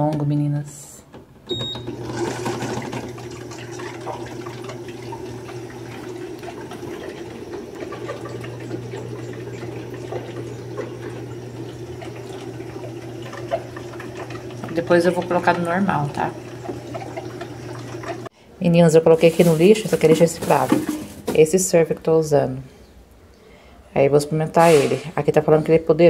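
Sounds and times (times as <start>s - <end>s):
washing machine beep: 1.5s - 18.3s
washing machine low hum: 1.5s - 18.3s
water pouring into drum: 1.8s - 18.3s.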